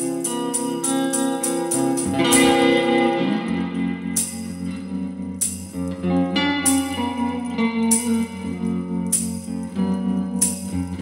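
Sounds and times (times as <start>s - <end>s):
electric guitar sustained notes: 0.0s - 11.0s
tambourine struck: 0.0s - 11.0s.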